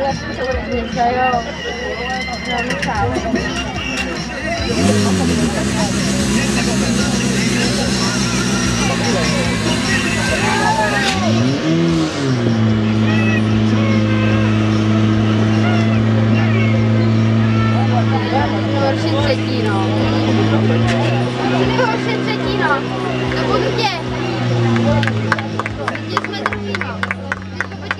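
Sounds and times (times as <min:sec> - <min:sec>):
people's voices: 0:00.0 - 0:27.9
pump engine running: 0:04.6 - 0:11.8.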